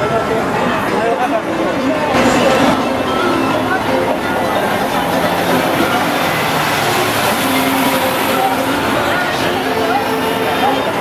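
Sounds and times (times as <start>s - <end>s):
street traffic: 0.0s - 11.0s
bus diesel engine passing: 0.1s - 11.0s.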